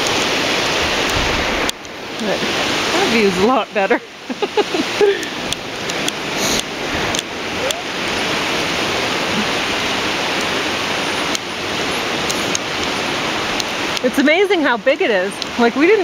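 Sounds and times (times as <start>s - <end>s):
river rushing over rapids: 0.0s - 16.0s.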